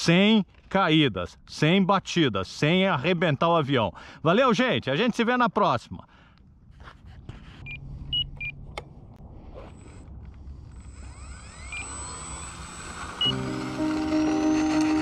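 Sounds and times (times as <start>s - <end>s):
electric motor and propeller whining: 9.3s - 15.0s
background music: 13.2s - 15.0s.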